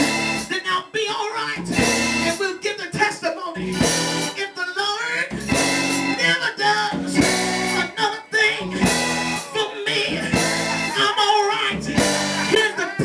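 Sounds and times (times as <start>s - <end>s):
live church band with guitar: 0.0s - 13.0s
person singing into a microphone: 6.0s - 13.0s.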